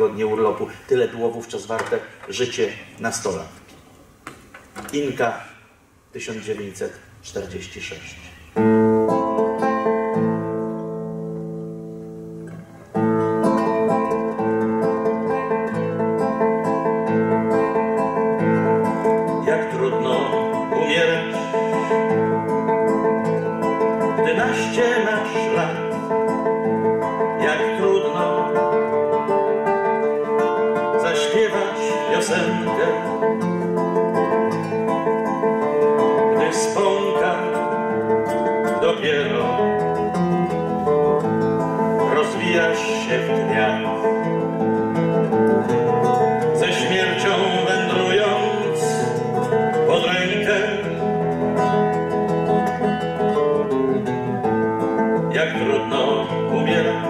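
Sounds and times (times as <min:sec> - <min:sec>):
classical guitar playing: 0:08.2 - 0:57.0.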